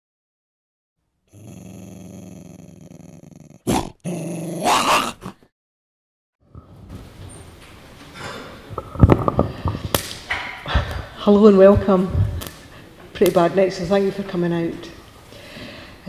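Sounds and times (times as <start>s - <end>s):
dog growling: 1.3s - 5.5s
faint hall room noise: 6.5s - 16.0s.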